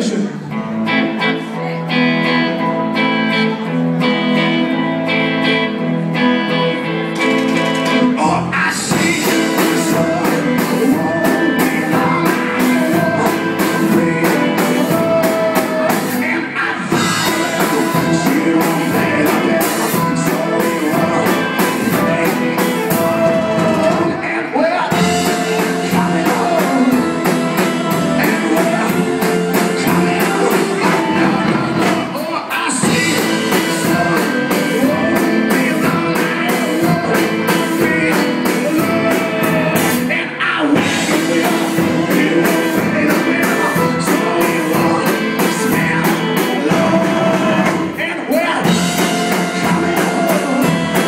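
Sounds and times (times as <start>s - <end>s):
ringing electric guitar chords: 0.0s - 32.2s, 32.8s - 48.0s, 48.6s - 51.0s
live band music: 0.0s - 51.0s
steady drum beat: 8.8s - 24.2s, 24.9s - 40.2s, 40.8s - 51.0s
accordion: 8.9s - 24.2s, 25.0s - 40.1s, 40.8s - 48.0s, 48.7s - 51.0s.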